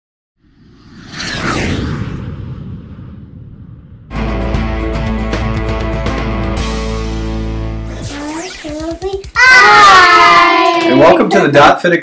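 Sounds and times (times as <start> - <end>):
bright swish with falling sweep: 0.4 - 4.0
low rumble: 0.4 - 5.3.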